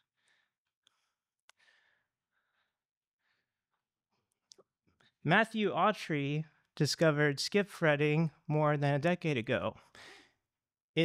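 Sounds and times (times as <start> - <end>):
faint breath: 0.1 - 3.6, 9.9 - 10.4.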